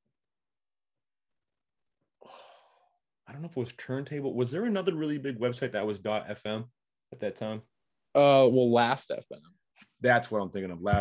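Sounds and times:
man's breathy sigh: 2.2 - 3.0.

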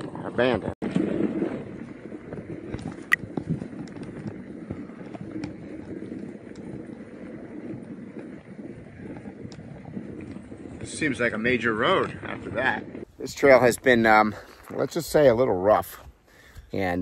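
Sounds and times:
bike rattles and clicks: 0.0 - 15.1
bike tyres on gravel: 0.0 - 17.0.

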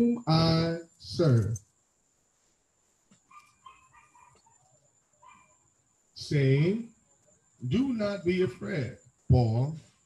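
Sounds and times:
faint bird calls: 3.2 - 5.7.

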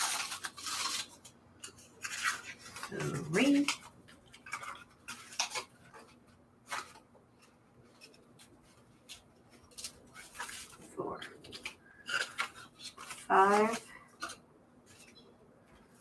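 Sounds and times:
paper envelopes rustling: 0.0 - 16.0.

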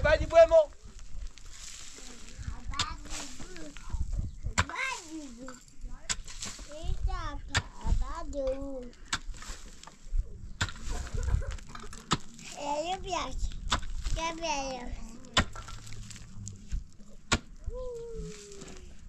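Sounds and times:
child talking: 2.4 - 5.6, 6.6 - 9.0, 12.5 - 15.4, 17.6 - 18.9
pickaxe striking stony ground: 6.1 - 6.7, 10.6 - 12.4, 13.6 - 14.4, 15.3 - 17.6.

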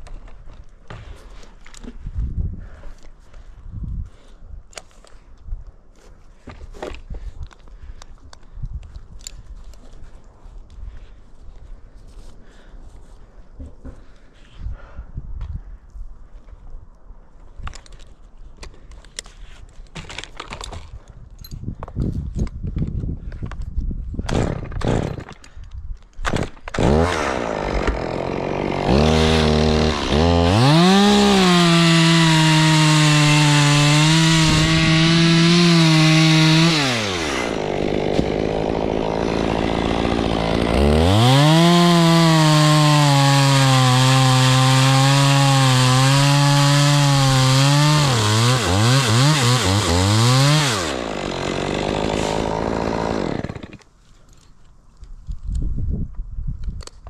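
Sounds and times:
chainsaw cutting wood: 24.3 - 25.4, 26.2 - 53.9.

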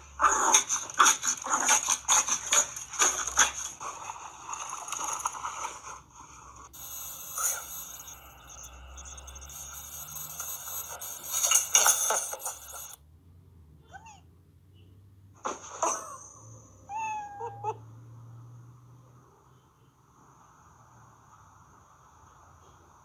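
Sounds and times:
noise bursts: 0.0 - 13.0
cat meowing: 16.9 - 17.8.

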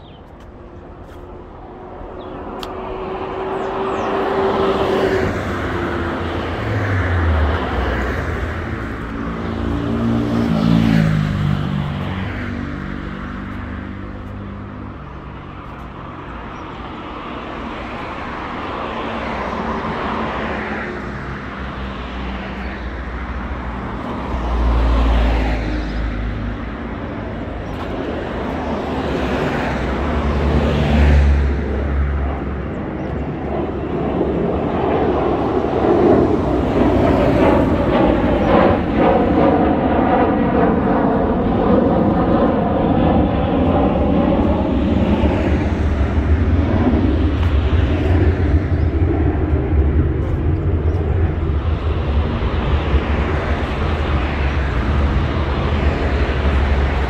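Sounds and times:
sustained traffic rumble: 0.0 - 57.0
vehicles passing: 0.0 - 57.0.

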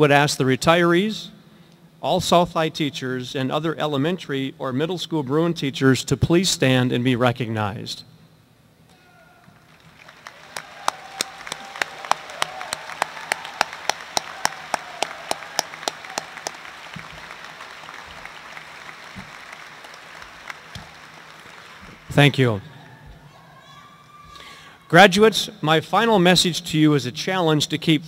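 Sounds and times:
audience applauding: 9.4 - 22.6
nearby hands clapping sharply: 10.0 - 22.1.

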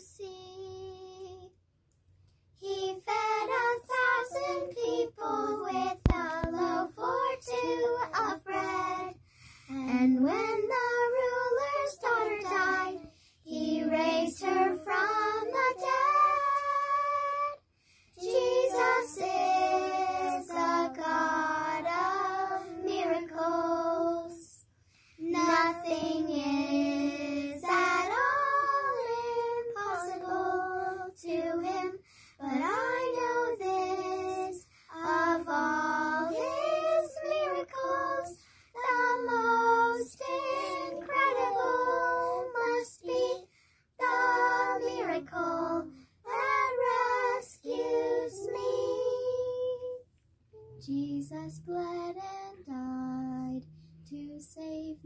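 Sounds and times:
children singing: 2.6 - 9.2, 9.8 - 17.6, 18.2 - 24.6, 25.2 - 49.8.

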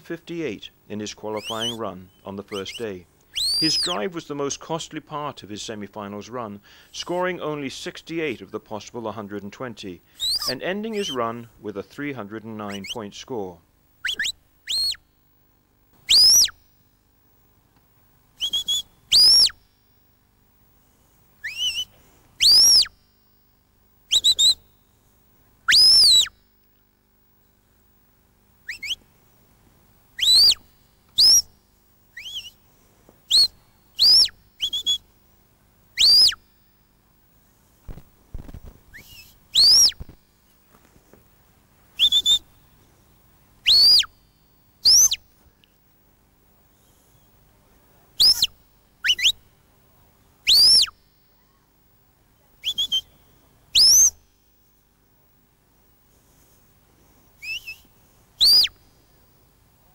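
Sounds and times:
shrill whistle blasts: 1.3 - 4.0, 10.2 - 11.2, 12.7 - 13.0, 14.0 - 15.0, 16.0 - 16.6, 18.4 - 19.6, 21.4 - 23.1, 24.1 - 24.7, 25.7 - 26.4, 28.6 - 29.0, 30.2 - 30.6, 31.2 - 31.5, 32.1 - 32.6, 33.3 - 35.0, 36.0 - 36.5, 38.9 - 40.2, 42.0 - 42.5, 43.6 - 45.2, 48.2 - 49.4, 50.4 - 51.1, 52.6 - 54.2, 57.4 - 58.8.

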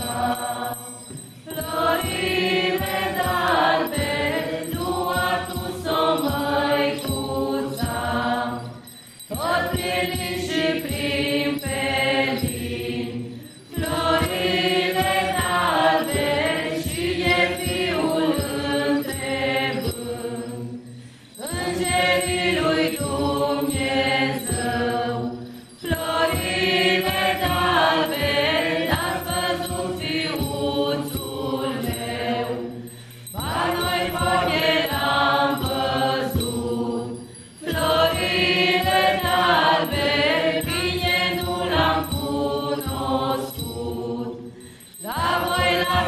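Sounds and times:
group singing unaccompanied: 0.0 - 46.0.

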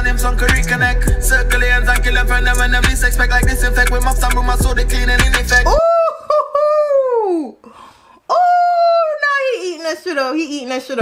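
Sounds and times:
person howling excitedly: 5.6 - 7.6, 8.3 - 9.5.

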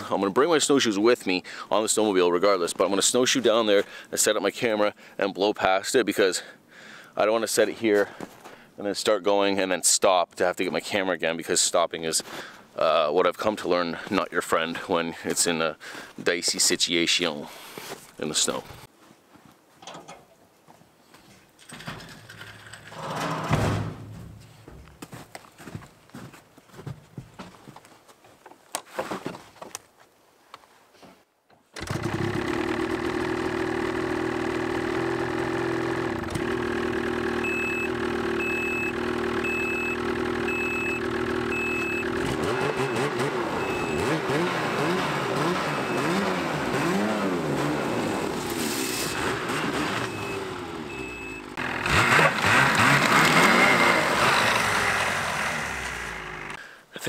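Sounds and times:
snowmobile engine idling and revving: 31.8 - 56.6
short evenly spaced beeps: 37.5 - 44.2, 50.0 - 51.5.

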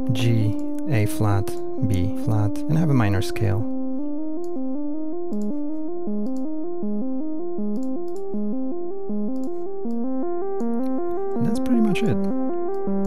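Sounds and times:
synthesizer sequence of stepped notes: 0.0 - 13.0.

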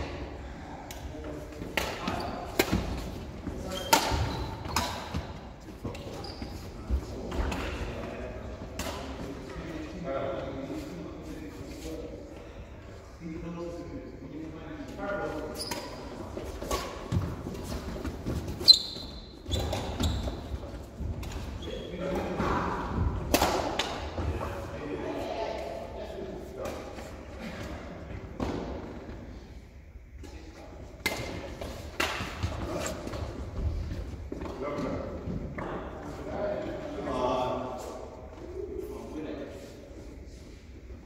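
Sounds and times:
shoe squeak: 5.9 - 6.8, 15.6 - 16.1, 18.6 - 20.5.

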